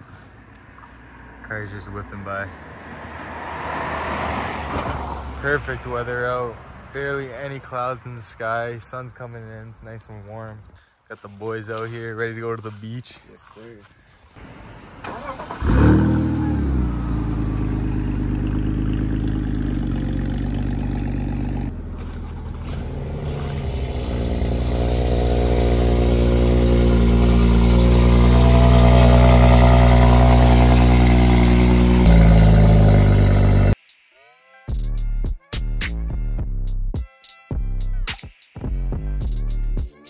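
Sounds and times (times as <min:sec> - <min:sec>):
car engine starting and idling: 0:14.4 - 0:33.8
second car engine idling: 0:15.1 - 0:33.8.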